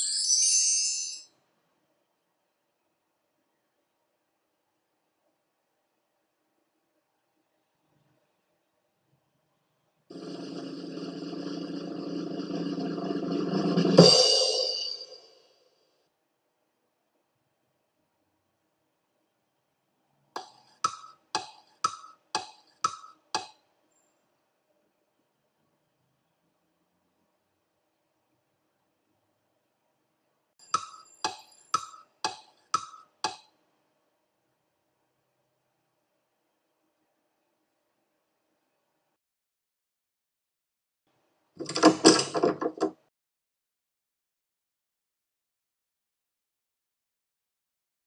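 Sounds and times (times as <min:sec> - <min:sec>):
drum roll: 0:10.1 - 0:15.3
cymbal crash: 0:13.9 - 0:15.3.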